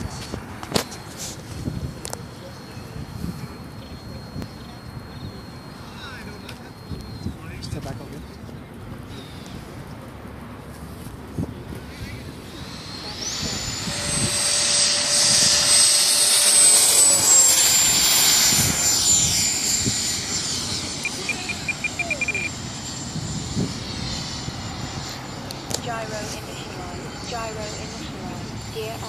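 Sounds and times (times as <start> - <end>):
electric ducted fan whine: 0.0 - 29.0.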